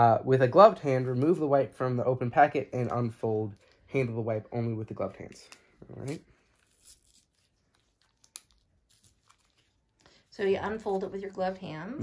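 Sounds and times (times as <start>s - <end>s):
packet tearing open: 5.9s - 10.1s.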